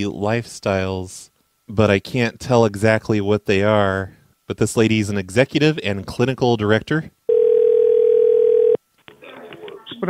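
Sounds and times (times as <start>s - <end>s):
telephone ringback tone: 7.3s - 8.8s.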